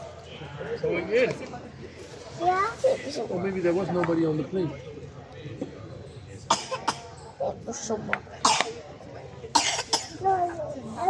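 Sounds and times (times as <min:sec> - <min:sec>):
person coughing: 0:09.6 - 0:10.2.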